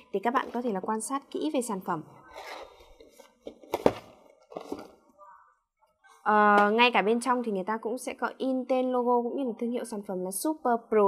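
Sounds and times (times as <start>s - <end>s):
cardboard scraping and rustling: 2.3s - 5.0s.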